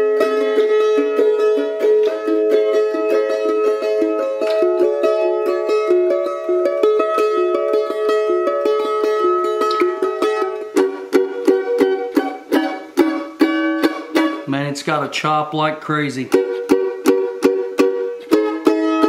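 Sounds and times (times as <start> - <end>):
mandolin picked notes: 0.0 - 19.0.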